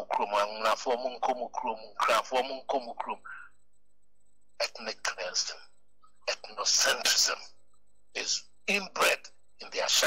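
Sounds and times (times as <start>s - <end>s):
man speaking: 0.0s - 3.4s, 4.6s - 7.5s, 8.2s - 10.0s.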